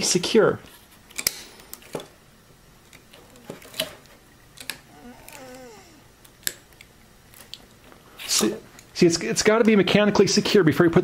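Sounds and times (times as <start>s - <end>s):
pliers clicking on wire: 4.6s - 5.6s.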